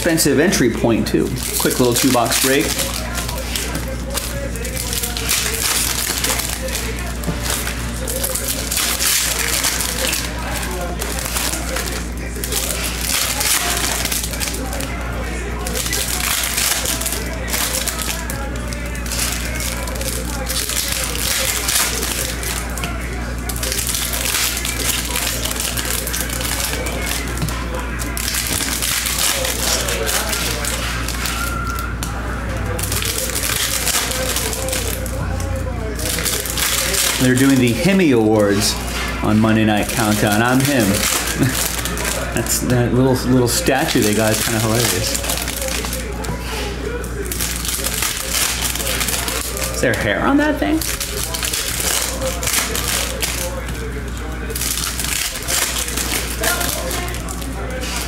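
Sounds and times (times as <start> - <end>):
foil wrappers tearing and crinkling: 0.0 - 58.0.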